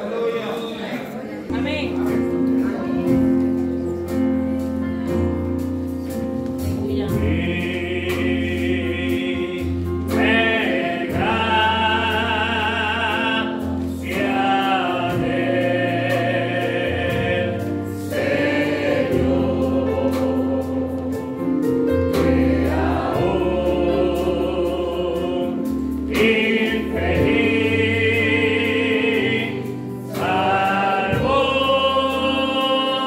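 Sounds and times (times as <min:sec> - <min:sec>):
bass guitar: 0:01.5 - 0:10.5
electric keyboard: 0:01.5 - 0:33.0
voices singing along: 0:06.8 - 0:33.0
man singing through microphone: 0:06.9 - 0:17.6.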